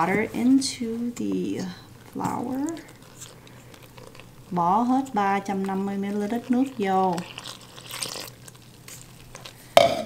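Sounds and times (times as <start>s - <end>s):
spatula scraping bowl: 0.0s - 10.0s
water pouring into flour: 2.8s - 9.8s.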